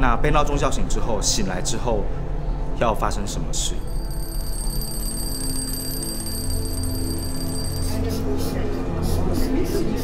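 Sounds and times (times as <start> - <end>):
background music: 0.1 - 10.0
twin-bell alarm clock ringing: 3.8 - 8.4.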